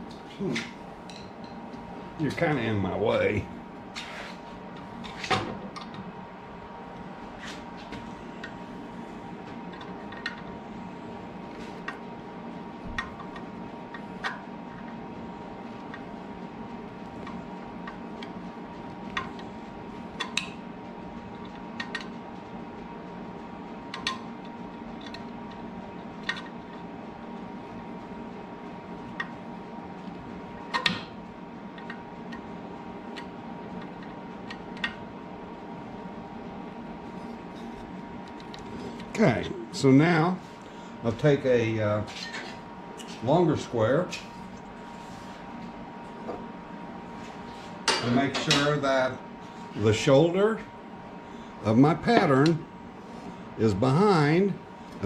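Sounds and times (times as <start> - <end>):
steady machine hum: 0.0 - 55.0.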